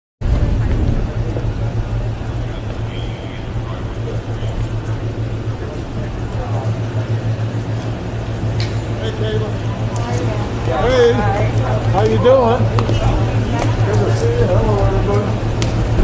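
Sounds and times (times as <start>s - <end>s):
car engine idling: 0.2s - 16.0s
faint voices: 0.2s - 16.0s.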